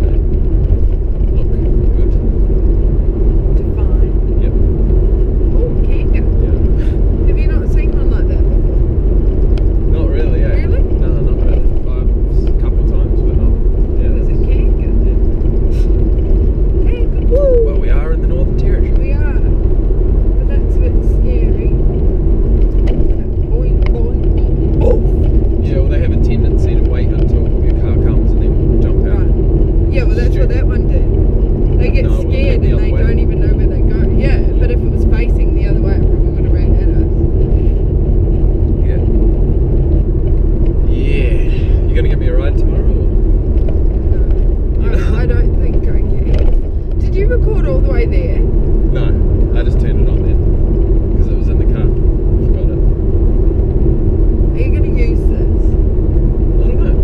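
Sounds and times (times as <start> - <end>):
road noise inside moving car: 0.0 - 57.0
faint muffled voices: 40.9 - 43.1.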